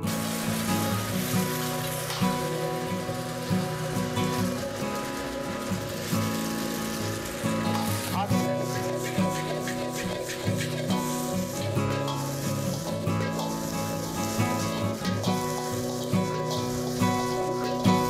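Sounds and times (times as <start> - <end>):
background music: 0.0 - 18.0
food sizzling in a wok: 0.0 - 18.0.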